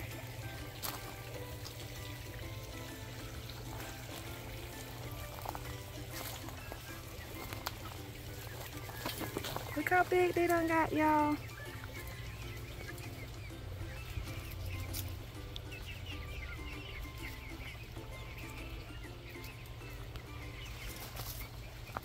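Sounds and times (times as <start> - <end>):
hens clucking: 0.0 - 22.0
high bird chirps: 2.8 - 22.0.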